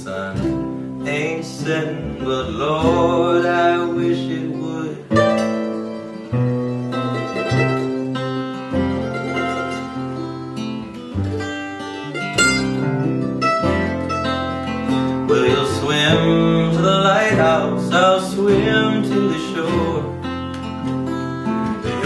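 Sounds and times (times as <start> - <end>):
acoustic guitar strumming: 0.0 - 22.0
bending melody line: 0.0 - 22.0
mandolin: 0.0 - 22.0
upright bass: 0.0 - 22.0.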